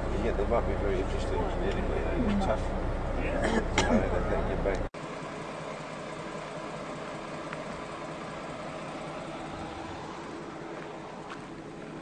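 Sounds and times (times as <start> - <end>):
road noise: 0.0 - 12.0
vehicle engine hum: 0.0 - 12.0.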